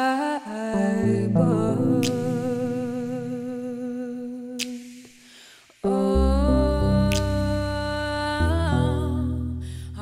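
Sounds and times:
woman singing with vibrato: 0.0 - 5.1, 5.8 - 10.0
keyboard chord: 1.0 - 3.6
deep bass: 6.2 - 10.0.

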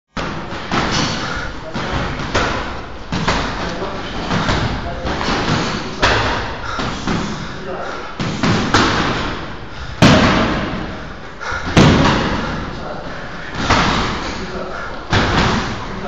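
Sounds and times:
kicks and punches hitting pads: 0.2 - 7.4, 8.2 - 11.0, 11.6 - 12.8, 13.5 - 14.3, 15.1 - 15.8.

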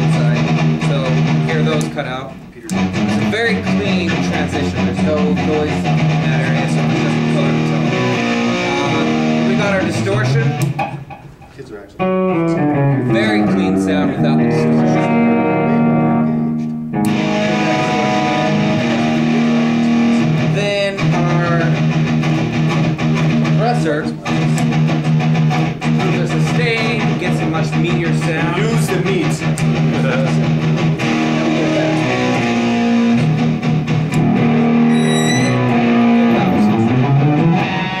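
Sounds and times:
electric guitar notes ringing: 2.7 - 11.1, 12.0 - 23.6, 29.7 - 38.0.

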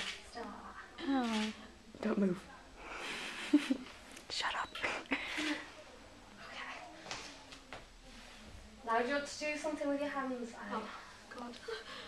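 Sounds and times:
whispered laughter: 2.8 - 4.2
soft whispering: 4.2 - 8.8.

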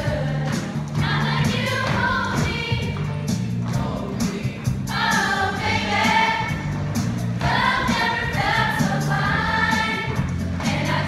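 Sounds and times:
choir singing in harmony: 0.0 - 2.9, 3.8 - 11.0.

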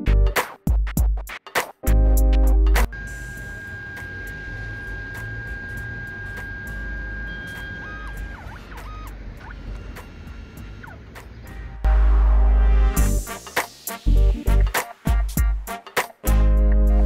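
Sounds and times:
printer motor whine: 2.9 - 11.5
rising and falling motor tones: 3.0 - 11.2.

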